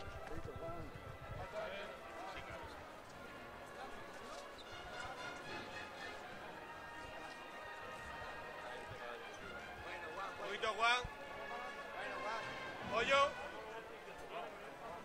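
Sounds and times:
crowd murmuring: 0.0 - 15.0.

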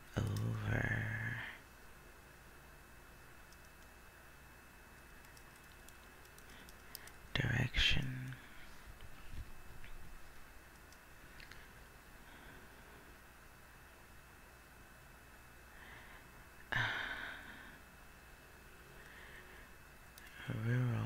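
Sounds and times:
keyboard typing: 3.4 - 3.9, 5.0 - 7.2.

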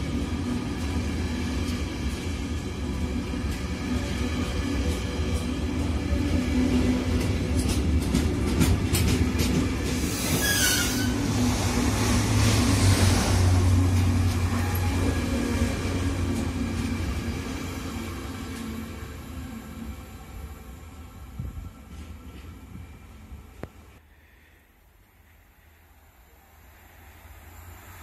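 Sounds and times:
freight train wheels rumbling: 0.0 - 24.0
falling squeal: 10.1 - 11.2.

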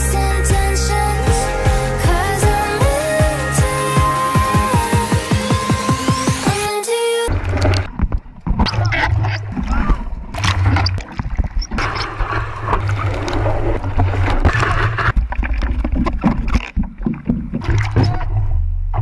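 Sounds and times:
water splashing and rushing: 7.3 - 18.4.

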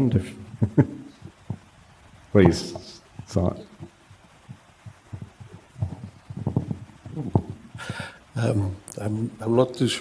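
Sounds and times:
microphone handling thumps: 1.2 - 1.8, 2.4 - 8.2.

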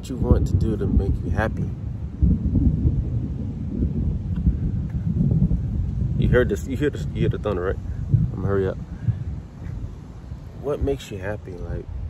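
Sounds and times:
thunder rumbling: 0.0 - 12.0.

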